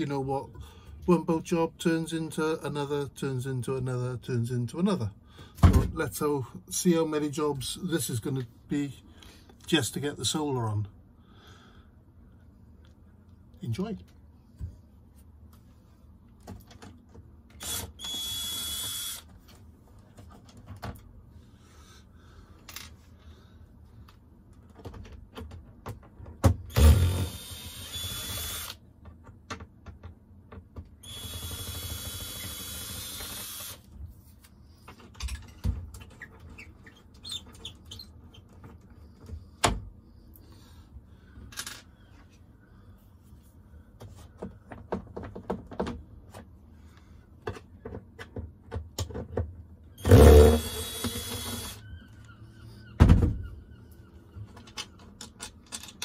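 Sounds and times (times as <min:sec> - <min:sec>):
power drill whining: 0:17.6 - 0:19.3, 0:26.7 - 0:28.8, 0:31.0 - 0:33.8, 0:50.0 - 0:51.9
knocks and clicks of hand work: 0:44.0 - 0:46.5.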